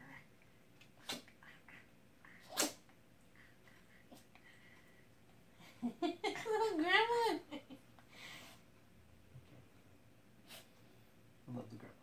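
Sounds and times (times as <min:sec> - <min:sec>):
small dog sneezing: 0:01.0 - 0:01.3, 0:02.4 - 0:02.9.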